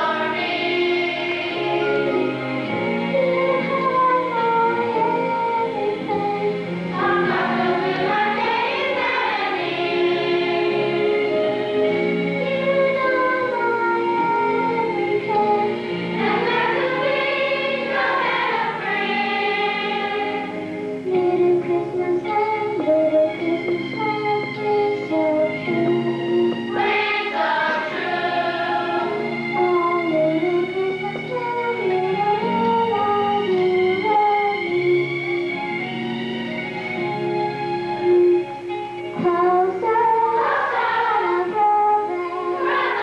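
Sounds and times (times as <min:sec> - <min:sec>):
choir singing: 0:00.0 - 0:02.5, 0:06.9 - 0:20.7, 0:26.7 - 0:30.2, 0:39.9 - 0:43.0.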